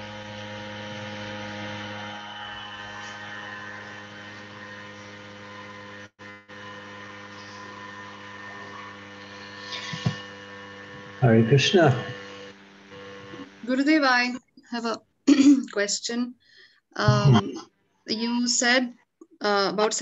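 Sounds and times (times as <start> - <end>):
electrical hum: 0.0 - 16.2, 17.0 - 18.8.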